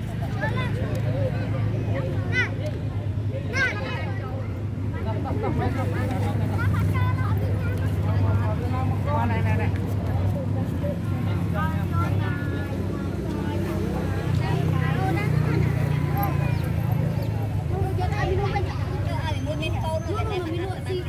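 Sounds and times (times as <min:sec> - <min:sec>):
indistinct voices talking: 0:00.0 - 0:21.0.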